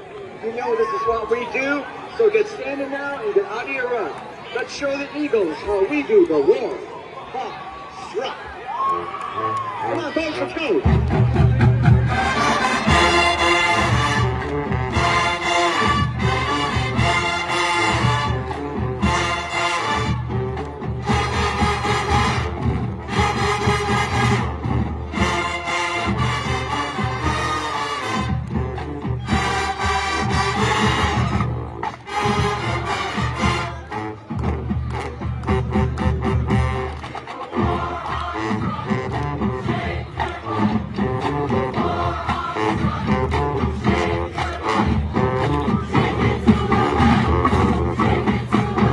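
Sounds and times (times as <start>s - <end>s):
marching band playing: 8.8s - 48.9s.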